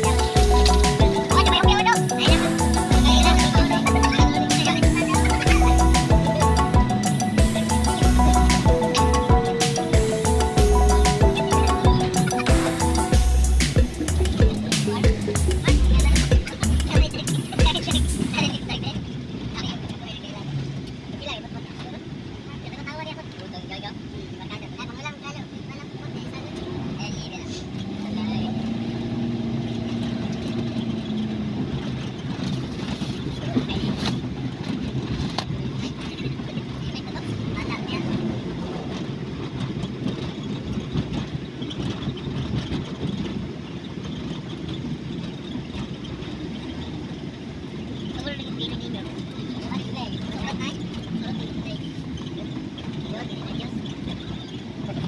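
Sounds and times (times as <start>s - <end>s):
passengers talking indistinctly: 0.0s - 55.0s
van road and engine noise: 0.0s - 55.0s.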